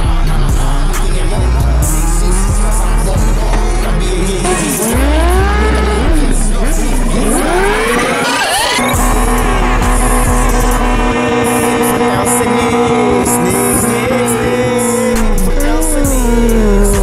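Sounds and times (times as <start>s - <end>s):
motorcycle engine revving: 0.0s - 17.0s
music with steady bass: 0.0s - 17.0s.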